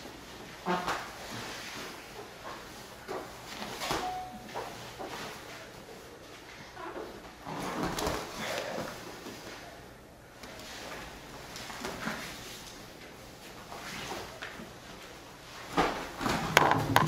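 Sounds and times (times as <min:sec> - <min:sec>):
bodies scuffling on a mat: 0:00.0 - 0:06.4, 0:07.0 - 0:09.6, 0:10.4 - 0:16.5.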